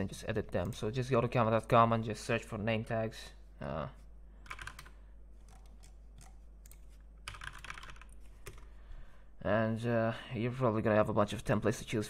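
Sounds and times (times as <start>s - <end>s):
typing on computer keyboard: 4.4s - 8.7s.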